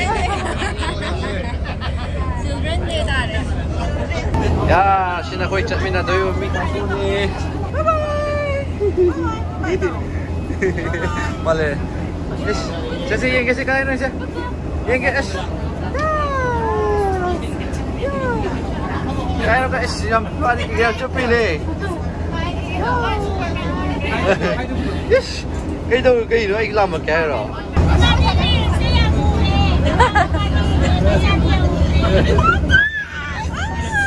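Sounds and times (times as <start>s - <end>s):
bus humming: 0.0s - 34.0s
low steady rumble: 0.0s - 34.0s
people chattering: 0.0s - 34.0s
child squealing: 32.4s - 34.0s.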